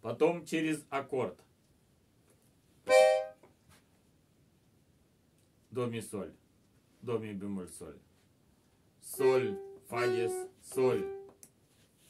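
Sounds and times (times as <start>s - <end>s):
accordion chord: 2.9s - 3.4s, 9.1s - 11.3s.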